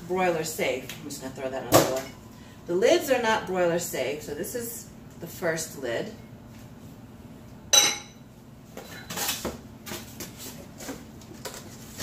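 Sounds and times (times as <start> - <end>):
glass lid clinking: 7.8 - 8.2.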